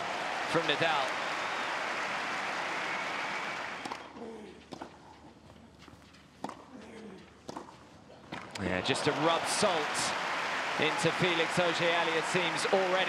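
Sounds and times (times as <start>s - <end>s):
crowd applauding: 0.0s - 4.0s, 8.6s - 13.0s
tennis ball struck by rackets: 7.5s - 7.7s.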